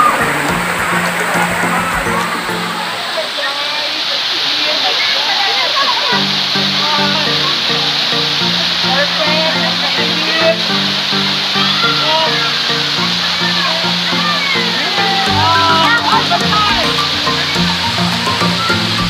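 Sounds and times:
background music: 0:00.0 - 0:03.2, 0:06.1 - 0:19.0
voices: 0:00.0 - 0:19.0
waterfall rushing: 0:00.0 - 0:19.0.

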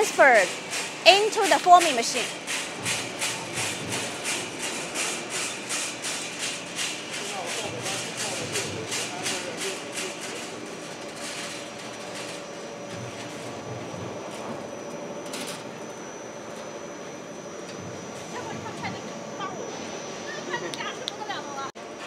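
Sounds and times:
machine mechanical hum: 0:00.0 - 0:22.0
regular mechanical clatter: 0:00.2 - 0:16.7.

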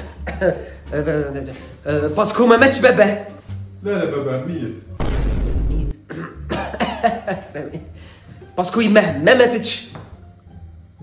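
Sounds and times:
man coughing: 0:00.0 - 0:00.8, 0:06.0 - 0:07.3.

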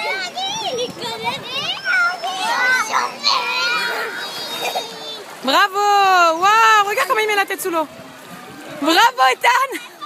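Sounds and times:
young children chattering: 0:00.0 - 0:05.6, 0:06.8 - 0:10.0.

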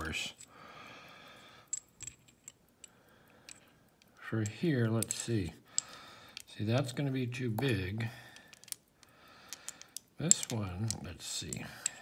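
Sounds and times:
metallic clicks of steel sockets: 0:01.6 - 0:12.0.

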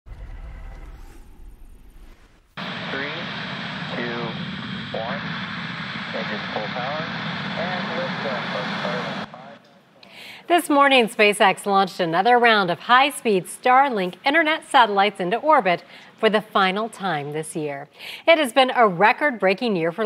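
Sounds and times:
low news sting: 0:00.1 - 0:09.6
rocket engines roaring: 0:00.1 - 0:09.6
commentator speaking: 0:02.8 - 0:05.4, 0:06.1 - 0:09.6.

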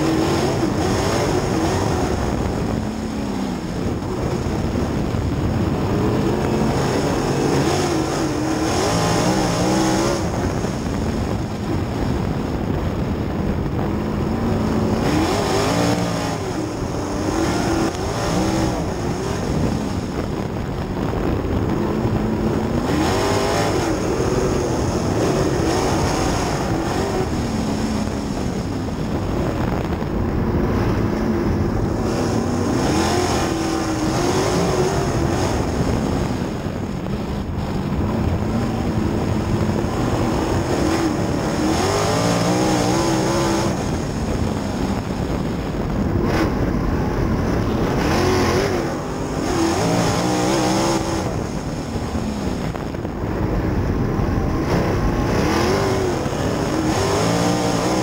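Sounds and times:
racing car engine revving: 0:00.0 - 0:58.0.

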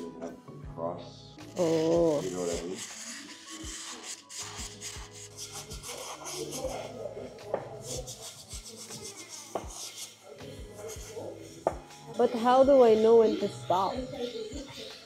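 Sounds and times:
sanding clay rasping: 0:01.5 - 0:07.0, 0:07.8 - 0:15.0.

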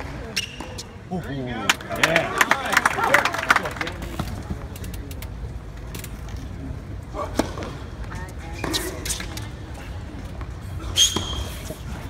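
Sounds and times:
spectators' voices murmuring: 0:00.0 - 0:12.0
crowd clapping: 0:01.7 - 0:04.2.

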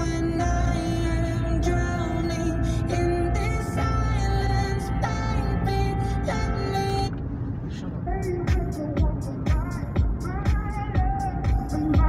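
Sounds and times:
engine and road noise hum: 0:00.0 - 0:12.0
music from car radio: 0:00.0 - 0:12.0.

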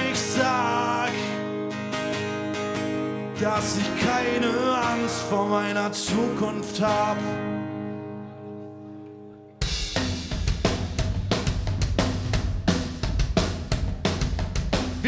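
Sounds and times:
rock band playing: 0:09.6 - 0:15.0.

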